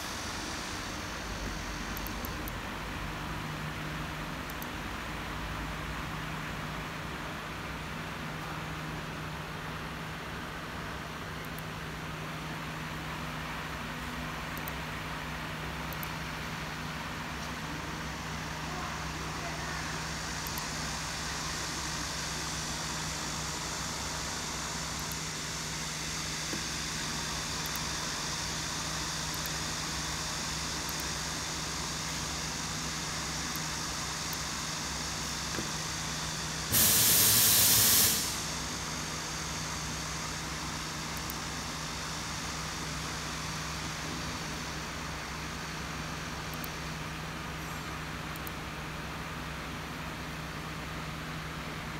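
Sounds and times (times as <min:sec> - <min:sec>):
workshop room hum: 0:00.0 - 0:51.9
loud hiss of rushing air: 0:36.6 - 0:38.9.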